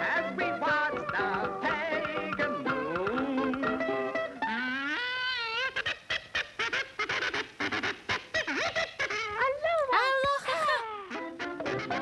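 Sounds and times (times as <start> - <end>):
cartoon boy blubbering cry: 4.4 - 6.0, 8.5 - 12.0.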